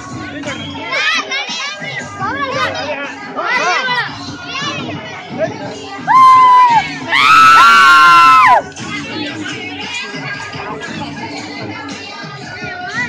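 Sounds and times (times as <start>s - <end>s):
murmur of voices: 0.0s - 13.0s
high rising and falling cries: 6.1s - 8.6s
schoolchildren shouting: 6.1s - 8.6s.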